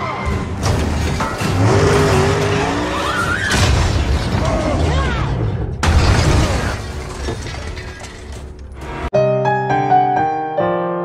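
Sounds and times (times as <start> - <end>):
car engines revving: 1.3 - 3.4.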